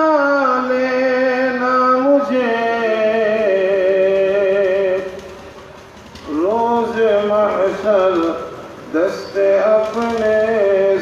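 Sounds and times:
man chanting slow melody: 0:00.0 - 0:05.2, 0:06.3 - 0:11.0.

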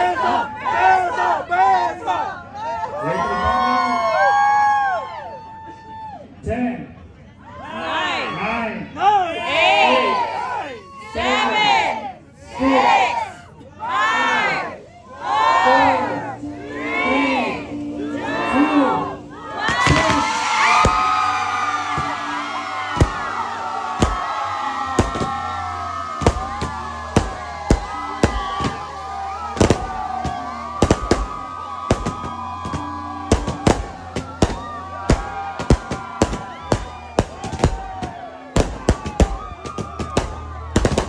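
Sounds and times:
crowd chanting: 0:00.0 - 0:02.4, 0:11.2 - 0:41.0
cheering and screaming: 0:00.0 - 0:06.4, 0:07.4 - 0:41.0
firework bangs and crackles: 0:19.7 - 0:41.0.

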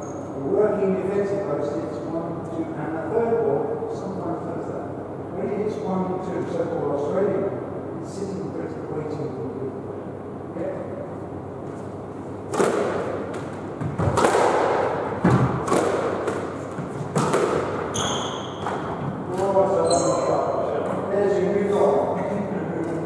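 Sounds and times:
squash ball hits echoing: 0:12.5 - 0:19.6
shoes squeaking on court floor: 0:16.4 - 0:21.0.

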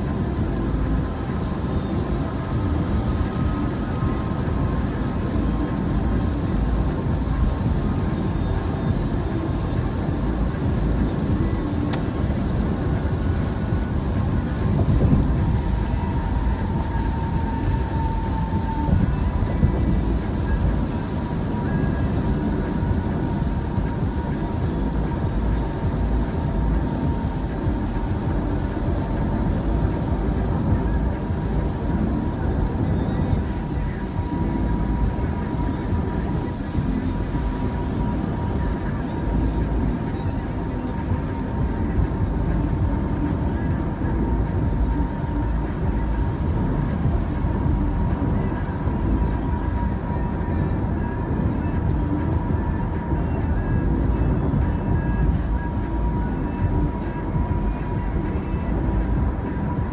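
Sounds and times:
faint steady tones: 0:00.0 - 0:59.9
road and tyre noise inside car: 0:00.0 - 0:59.9.

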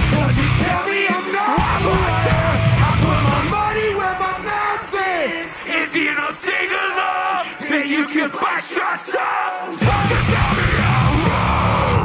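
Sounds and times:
electric guitar: 0:00.0 - 0:06.6, 0:09.8 - 0:12.0
metal band playing: 0:00.0 - 0:08.8, 0:09.6 - 0:12.0
man singing and yelling: 0:00.0 - 0:12.0.

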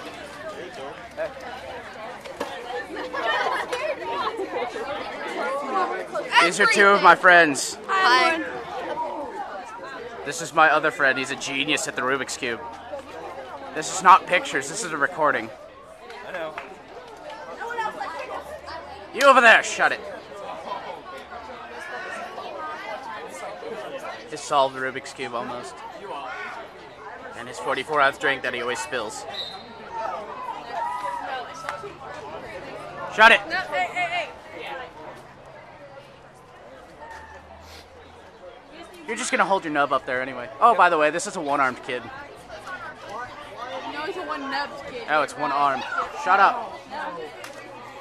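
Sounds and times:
young people chattering: 0:00.0 - 0:48.0.

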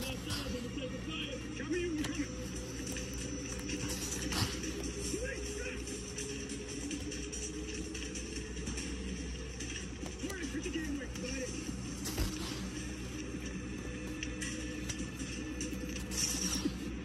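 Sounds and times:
indistinct background speech: 0:00.0 - 0:07.1
background music: 0:00.0 - 0:17.0.

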